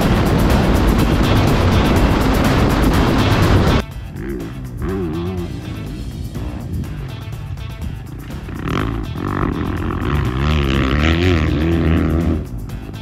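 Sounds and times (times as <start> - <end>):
background music: 0.0 - 13.0
dirt bike engines revving: 0.0 - 13.0.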